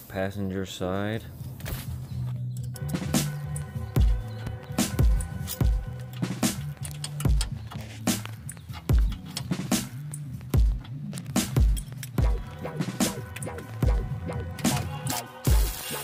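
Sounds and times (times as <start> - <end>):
deep bass line: 1.8 - 15.8
electronic music: 2.7 - 16.0
heavy kick drum: 10.6 - 10.9, 11.6 - 13.2, 13.8 - 14.2.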